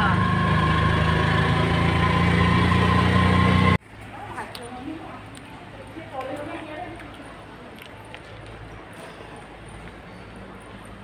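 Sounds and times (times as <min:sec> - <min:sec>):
vehicle engine drone from cabin: 0:00.0 - 0:03.8.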